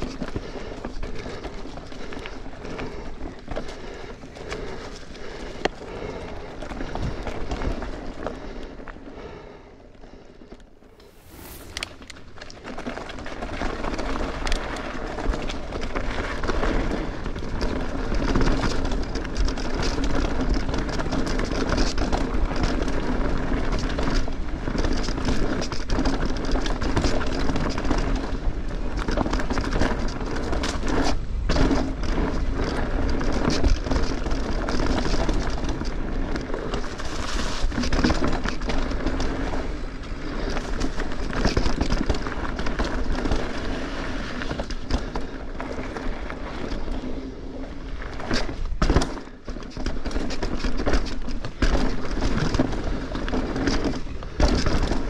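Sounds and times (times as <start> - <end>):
bike rattling and clicking: 0.0 - 55.0
bike tyres on dirt and rocks: 0.0 - 55.0.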